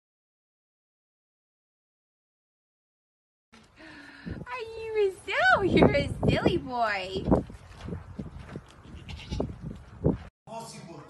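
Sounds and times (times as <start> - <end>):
goat kid bleating: 8.9 - 9.5.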